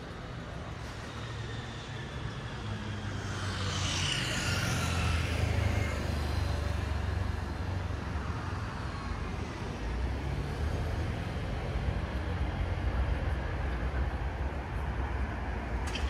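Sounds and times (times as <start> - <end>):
cars passing: 0.0 - 16.0
motor scooter passing: 0.7 - 9.0.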